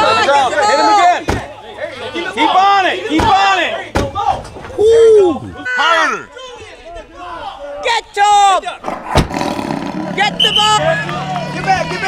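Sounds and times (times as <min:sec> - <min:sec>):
people shouting high-pitched calls: 0:05.5 - 0:06.4
drawn-out yell: 0:09.4 - 0:12.0.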